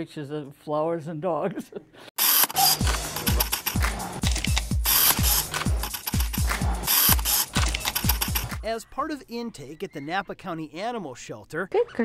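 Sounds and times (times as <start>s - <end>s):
camera shutter clicking: 2.2s - 8.6s.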